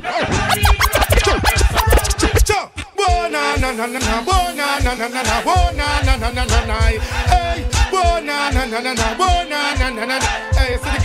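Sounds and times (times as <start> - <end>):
dj scratching: 0.0 - 9.4
dancehall beat with heavy bass: 0.0 - 11.0.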